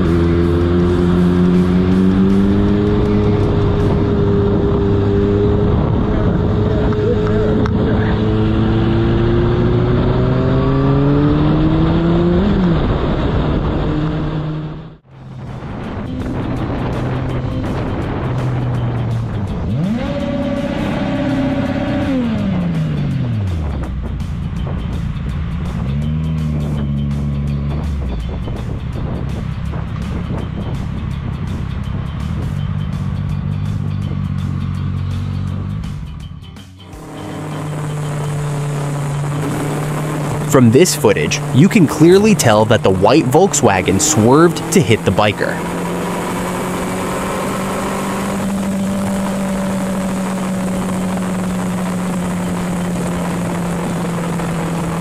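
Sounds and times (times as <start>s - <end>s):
motorcycle engine revving: 0.0s - 40.7s, 41.3s - 55.0s
road noise: 0.0s - 55.0s.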